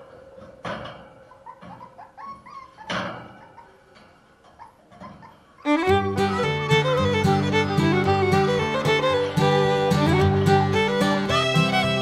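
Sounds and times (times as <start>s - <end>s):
puppies yipping and whimpering: 1.1s - 9.0s.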